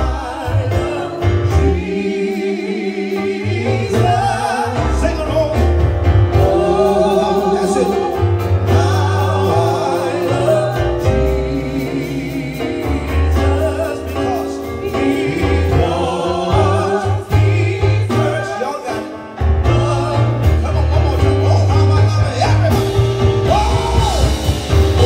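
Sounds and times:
women singing gospel: 0.0s - 5.5s, 6.3s - 19.1s
drums: 0.0s - 25.0s
keyboard: 0.0s - 25.0s
bass notes: 3.3s - 25.0s.

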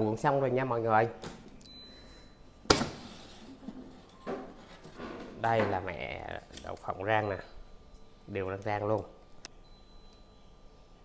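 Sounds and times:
metal tray scraping: 3.0s - 5.5s.

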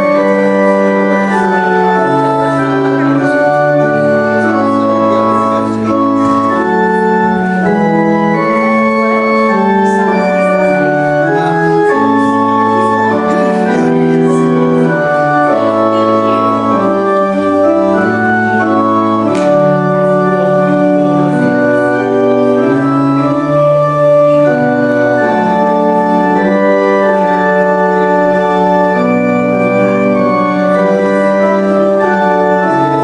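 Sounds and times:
organ playing held chords: 0.0s - 33.0s.

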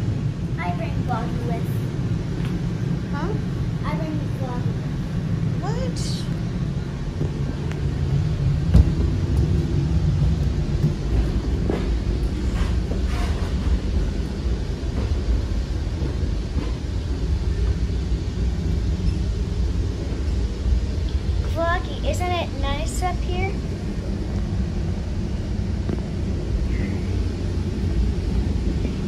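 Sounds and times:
train rumbling: 0.0s - 29.0s.

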